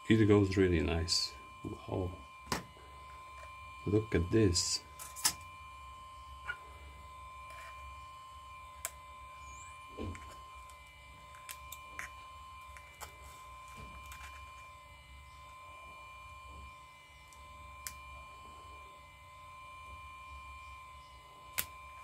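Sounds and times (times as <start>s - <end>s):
background hum with high whine: 0.0s - 22.0s.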